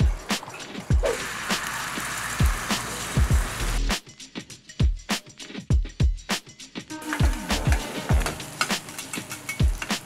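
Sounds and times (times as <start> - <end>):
oil sizzling in a pan: 0.0 - 3.9, 6.9 - 10.0
background music with a beat: 0.0 - 10.0.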